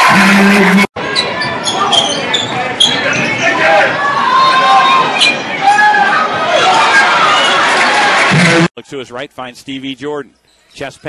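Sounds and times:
crowd chatter: 0.0 - 8.7
sneakers squeaking: 1.0 - 3.5.

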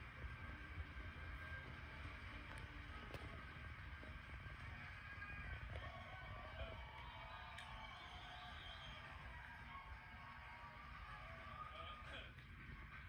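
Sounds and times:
faint music from television: 0.0 - 13.0.

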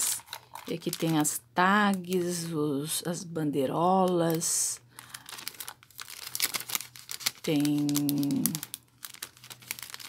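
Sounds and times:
plastic bag crinkling: 0.0 - 2.5, 3.9 - 10.0.

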